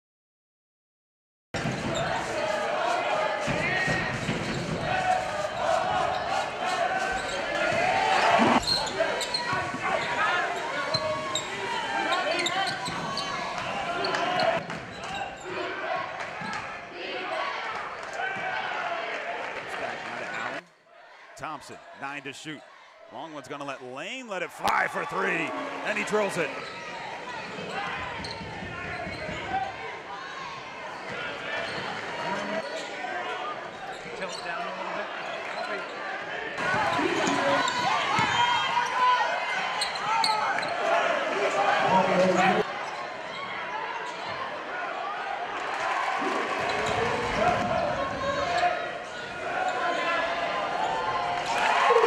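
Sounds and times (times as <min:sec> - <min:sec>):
crowd noise: 0:01.6 - 0:52.0.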